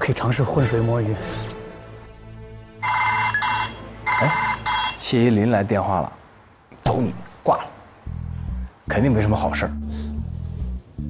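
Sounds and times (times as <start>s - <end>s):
phone ringtone: 2.8s - 5.0s.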